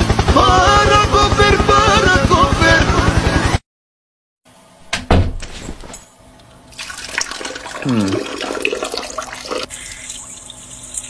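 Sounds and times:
urine splashing into toilet water: 6.8 - 11.0.

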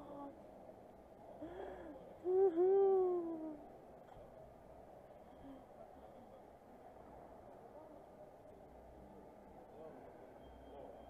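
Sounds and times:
person vocalizing ooh: 2.2 - 3.6.

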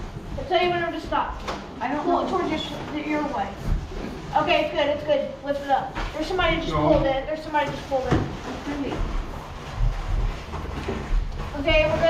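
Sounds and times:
cardboard box scraping: 7.8 - 12.0.

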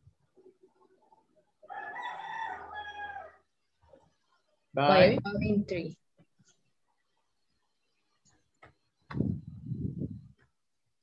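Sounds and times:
rooster crowing: 1.6 - 3.5.

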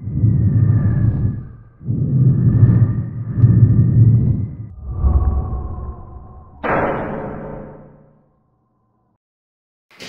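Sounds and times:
deep rumbling whooshes: 0.0 - 7.9.

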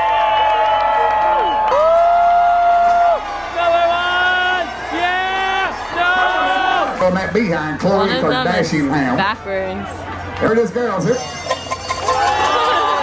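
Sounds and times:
people yelling long whoops: 0.0 - 7.0, 12.0 - 13.0.

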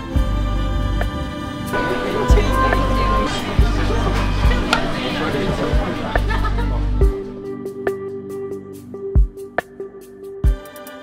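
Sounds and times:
background music with low bass: 0.0 - 11.0
indistinct voices: 1.7 - 7.0.

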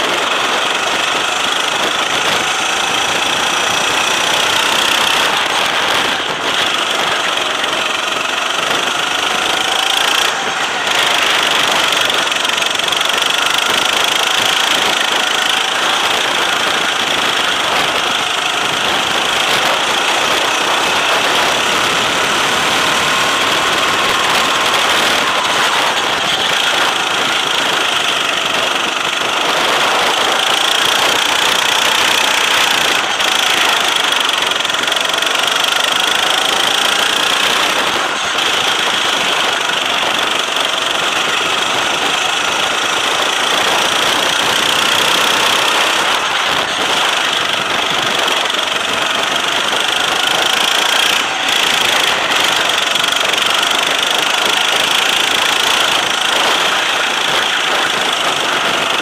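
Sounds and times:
go-kart engine racing: 0.0 - 59.0
steady rushing noise: 0.0 - 59.0.

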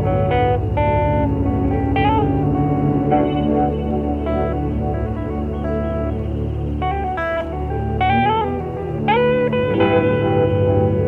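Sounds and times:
slow ambient music: 0.0 - 11.0.

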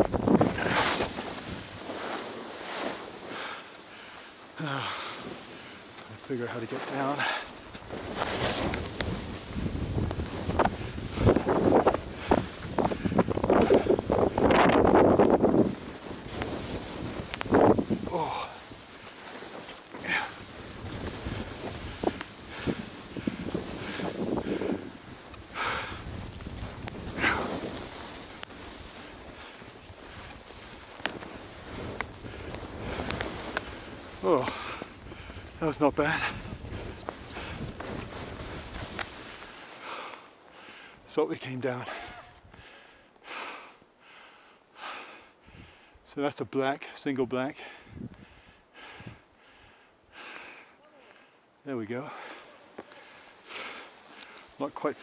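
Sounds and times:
wind buffeting microphone: 0.0 - 2.0, 5.2 - 39.6, 47.8 - 49.3
skis swishing through snow: 0.0 - 42.4, 52.1 - 55.0.

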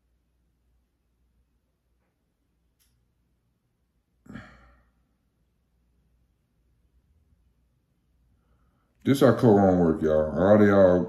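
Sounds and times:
man sighing: 4.2 - 5.0.

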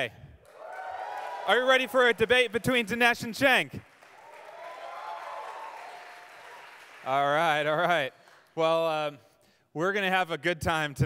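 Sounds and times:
audience applauding and cheering: 0.4 - 8.6.

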